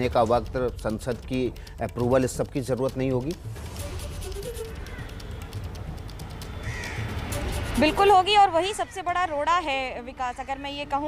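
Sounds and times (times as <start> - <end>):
outdoor street noise hum: 2.3 - 11.0
crow cawing: 4.5 - 5.6, 6.4 - 7.7, 8.4 - 9.6.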